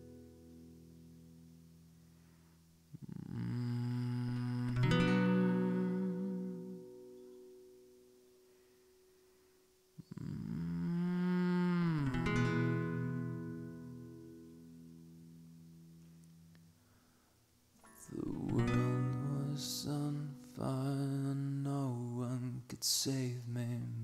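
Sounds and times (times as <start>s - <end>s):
acoustic guitar strummed chords: 0.0s - 2.6s, 3.5s - 9.3s, 11.5s - 17.0s, 17.8s - 24.0s.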